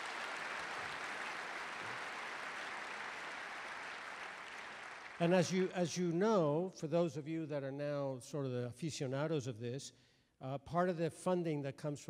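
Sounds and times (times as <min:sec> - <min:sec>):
audience applauding: 0:00.0 - 0:05.7.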